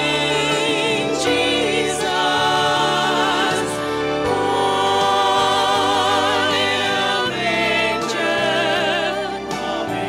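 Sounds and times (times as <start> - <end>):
group of mixed voices singing: 0.0 - 10.0.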